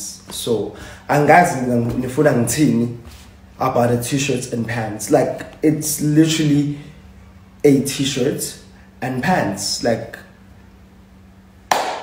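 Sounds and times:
man speaking: 0:00.0 - 0:03.0, 0:03.6 - 0:06.9, 0:07.6 - 0:10.3
faint steady hum: 0:00.0 - 0:12.0.

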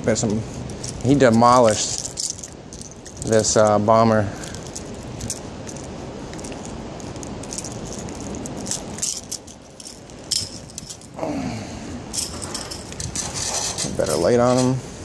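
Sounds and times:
fishing lure jingling rattle: 0:00.2 - 0:11.2, 0:12.1 - 0:14.8.

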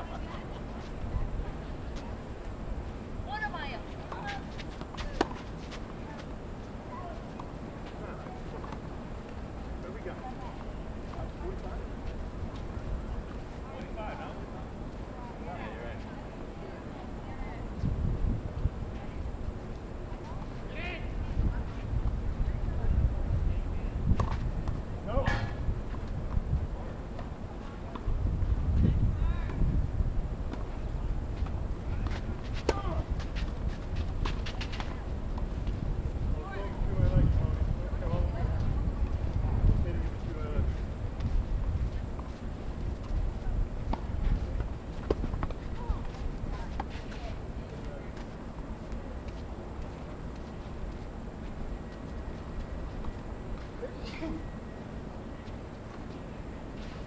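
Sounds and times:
wind rumble on microphone: 0:17.6 - 0:19.6, 0:20.2 - 0:47.7.

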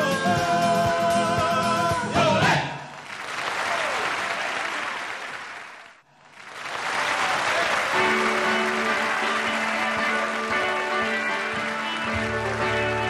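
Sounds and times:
audience applauding: 0:02.9 - 0:13.0
guitar music: 0:07.9 - 0:13.0.

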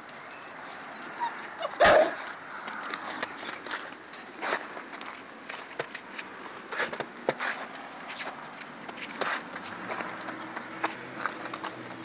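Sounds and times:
puppy whimpering: 0:01.0 - 0:02.2
puppy barking: 0:01.6 - 0:02.3.

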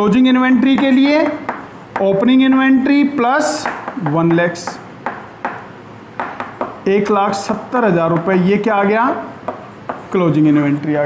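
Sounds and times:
chalk scraping on chalkboard: 0:00.6 - 0:05.6, 0:08.1 - 0:10.8
chalk tapping on chalkboard: 0:00.6 - 0:10.5.

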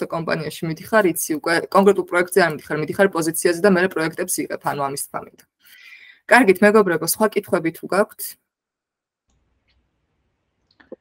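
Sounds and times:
woman speaking: 0:00.0 - 0:08.4.

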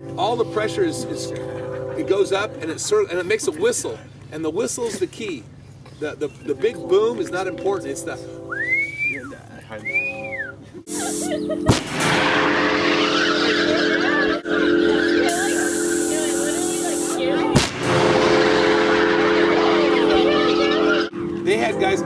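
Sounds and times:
steady droning tone: 0:00.0 - 0:04.0, 0:06.4 - 0:10.8
hail cannon blasts: 0:11.7 - 0:13.0, 0:17.5 - 0:18.9.

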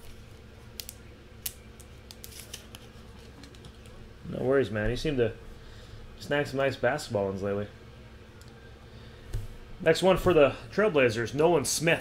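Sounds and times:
cards clicking and snapping: 0:00.7 - 0:04.0.

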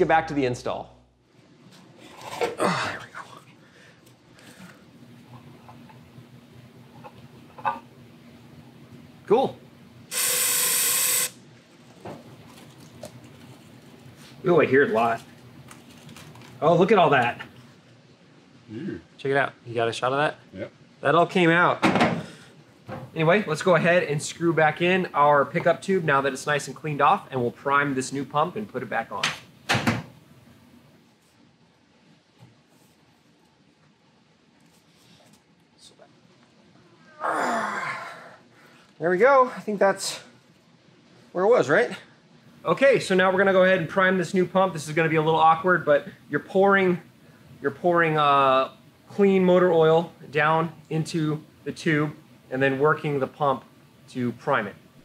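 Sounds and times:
man sighing with effort: 0:02.5 - 0:03.3, 0:37.1 - 0:38.4
aerosol can spraying hiss: 0:10.1 - 0:11.4.

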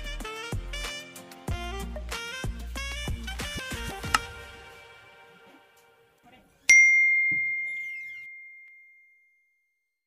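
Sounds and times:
bright bell ding: 0:06.7 - 0:09.5.

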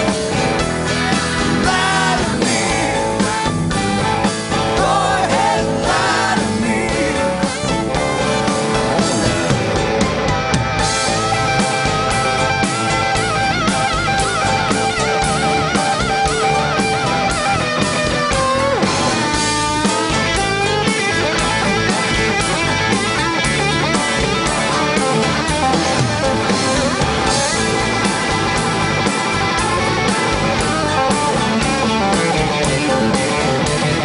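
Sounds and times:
drum kit: 0:00.0 - 0:34.0
electric guitar lead line: 0:00.0 - 0:34.0.

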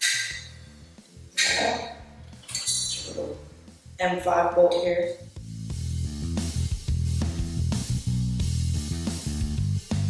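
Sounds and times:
metal plates clinking: 0:00.0 - 0:00.6, 0:01.4 - 0:03.4
soft background music: 0:00.2 - 0:06.0.

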